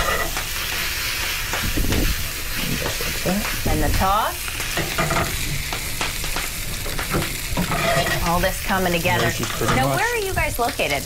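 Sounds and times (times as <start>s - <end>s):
food sizzling in a skillet: 0.0s - 11.0s.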